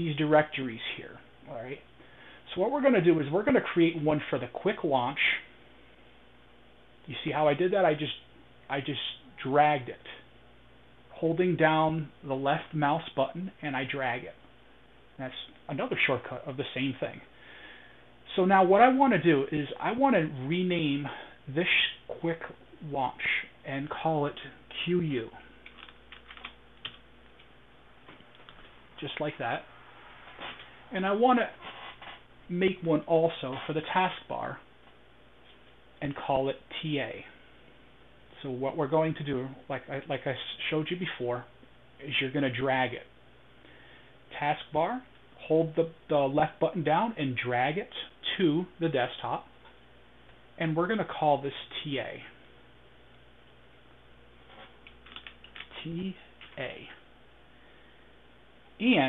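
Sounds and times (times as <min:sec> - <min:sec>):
faint keyboard keystrokes: 0:25.6 - 0:27.5, 0:54.9 - 0:55.7.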